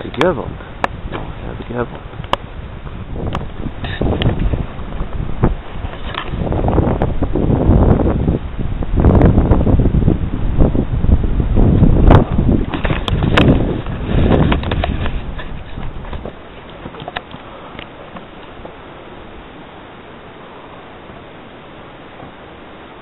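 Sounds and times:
wind buffeting microphone: 0.0s - 22.6s.

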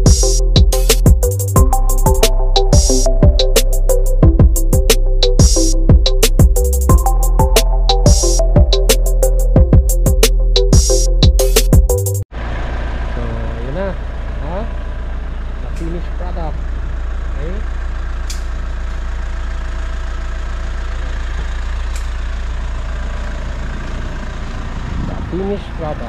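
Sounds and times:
music with a beat: 0.0s - 12.2s.

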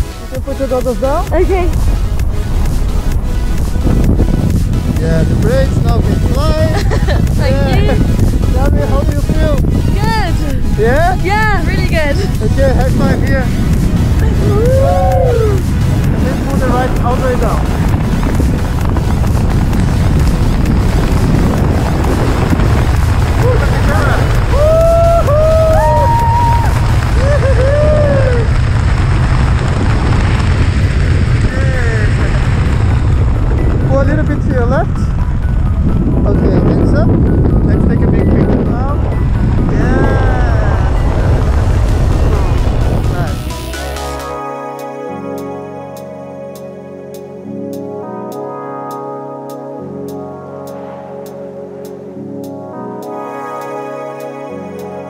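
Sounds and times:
wind rushing over microphone: 0.0s - 44.5s
vocal whoops: 14.4s - 15.6s, 24.5s - 28.5s.

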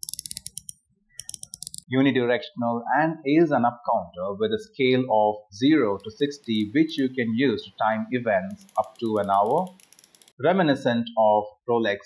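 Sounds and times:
watch bezel ratchet clicking: 0.0s - 1.9s, 5.9s - 7.2s, 8.5s - 10.4s.

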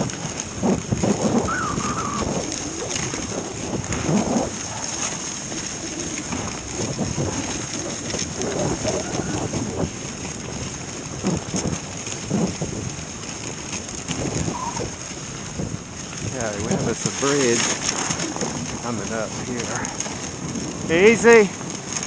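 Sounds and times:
sled runners sliding over snow: 0.0s - 22.0s.

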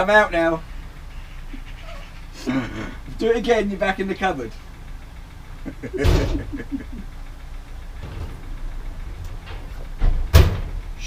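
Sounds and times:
low steady room hum: 0.0s - 11.0s
breathy burst of laughter: 1.1s - 3.1s, 5.6s - 7.2s.

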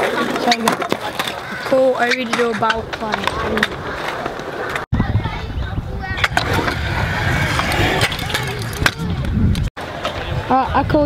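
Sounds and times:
scooter clacking on concrete: 0.0s - 4.8s
scooter wheels rolling on concrete: 0.0s - 11.0s.

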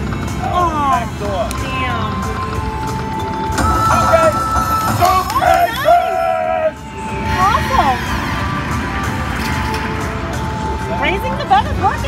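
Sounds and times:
casino background noise: 0.0s - 6.4s
slot machine electronic win tones: 2.0s - 11.4s.

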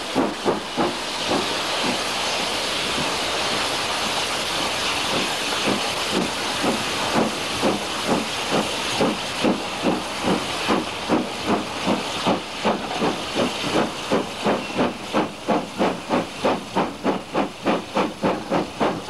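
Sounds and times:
steam hissing: 0.0s - 19.0s
steam locomotive exhaust beats: 0.0s - 19.0s.

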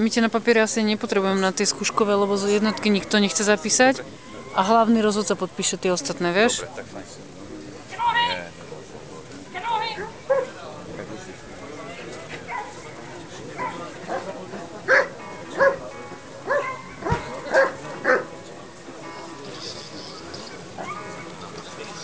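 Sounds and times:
dog barking: 10.3s - 10.5s, 12.5s - 12.8s, 13.6s - 14.3s, 14.9s - 15.8s, 16.5s - 18.3s.

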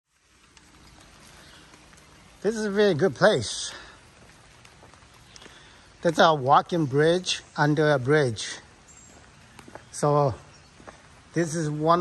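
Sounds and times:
outdoor background rushing: 0.1s - 12.0s.

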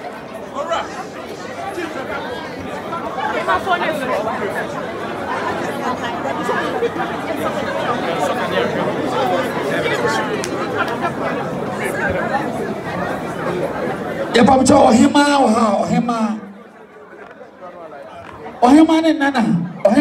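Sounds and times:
party chatter of many guests: 0.0s - 20.0s.

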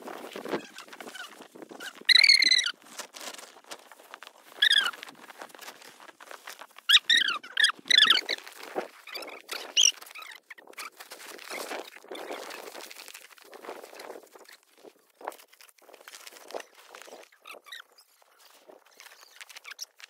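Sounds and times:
rope being handled: 0.0s - 7.2s
tarpaulin rustling: 0.0s - 20.0s
high-pitched squeaks: 0.6s - 2.8s, 4.6s - 5.0s, 6.9s - 8.4s.

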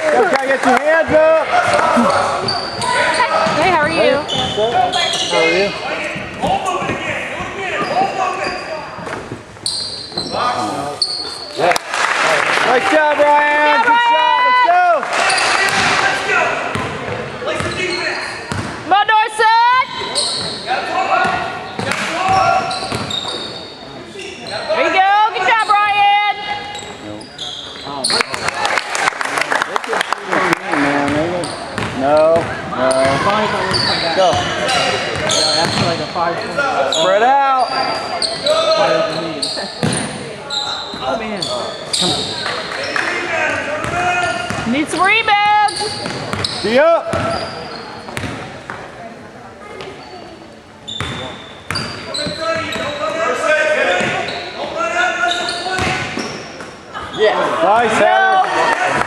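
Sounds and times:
spectators' voices: 0.0s - 59.0s
sneakers squeaking: 1.5s - 11.6s, 15.1s - 18.9s, 19.8s - 28.6s, 30.9s - 49.0s, 49.6s - 58.0s
basketball bouncing: 18.5s - 18.8s, 21.2s - 23.1s, 31.8s - 33.3s, 35.1s - 36.0s, 43.8s - 44.8s, 46.0s - 47.4s, 48.1s - 48.8s.

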